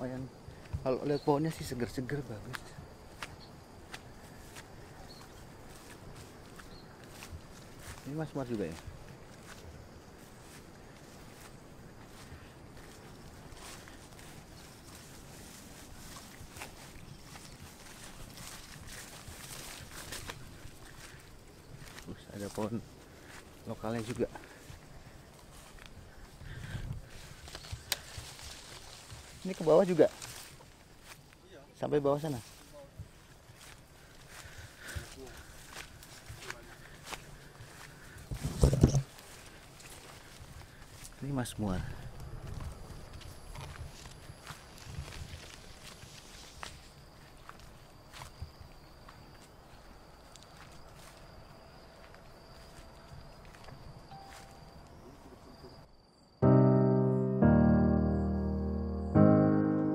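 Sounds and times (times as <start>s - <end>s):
footsteps on ground: 2.5s - 31.4s, 32.1s - 55.0s
twigs snapping: 27.4s - 28.9s.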